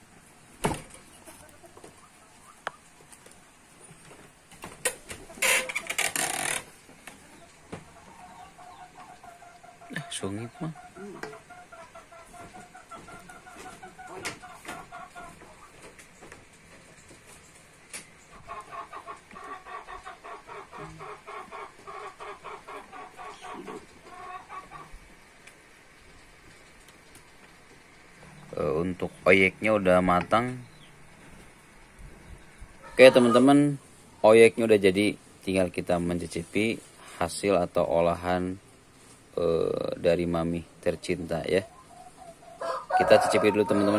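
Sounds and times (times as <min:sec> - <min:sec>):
hen clucking: 0:01.0 - 0:43.9.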